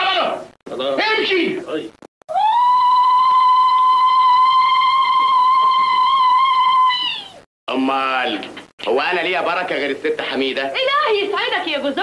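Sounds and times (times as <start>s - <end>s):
woman ululating: 2.3s - 7.4s.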